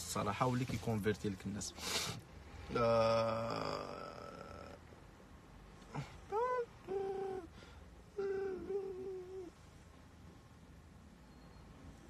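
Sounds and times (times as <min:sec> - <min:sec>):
man humming: 0:02.6 - 0:04.9, 0:05.8 - 0:09.6.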